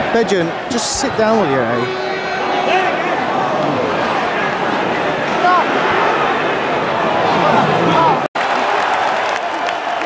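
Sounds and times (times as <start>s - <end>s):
stadium crowd din: 0.0s - 10.0s.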